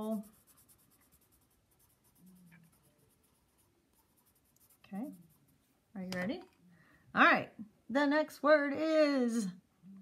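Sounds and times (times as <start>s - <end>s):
colored pencil scratching on paper: 0.0s - 5.8s.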